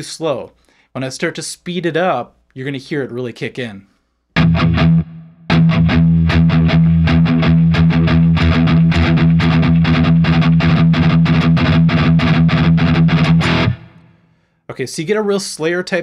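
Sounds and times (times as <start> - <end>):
distorted electric guitar chugging: 4.4 - 14.2.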